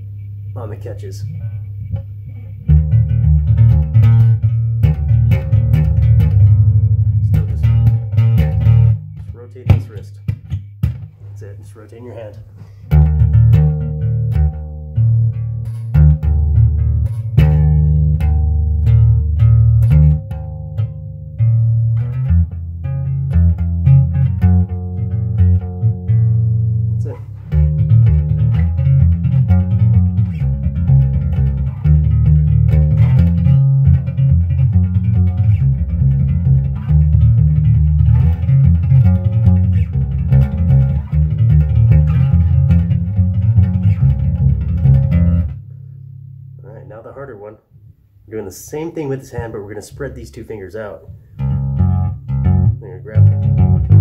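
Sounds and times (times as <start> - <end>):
bass guitar thumb slapping: 0.0 - 54.0.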